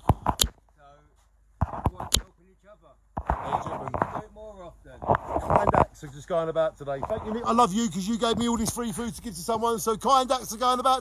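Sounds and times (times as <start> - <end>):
man's voice: 5.5 - 11.0.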